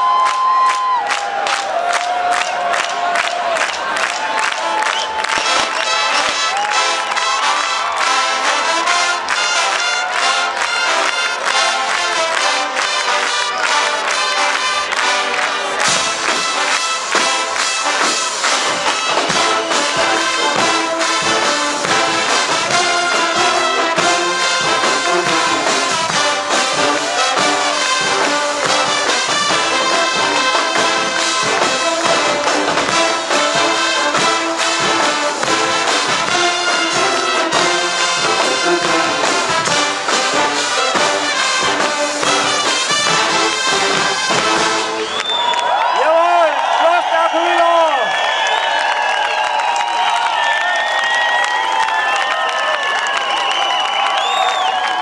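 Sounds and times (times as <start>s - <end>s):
brass and drum band playing: 3.5s - 46.8s
brass holding wavering notes: 5.4s - 45.0s.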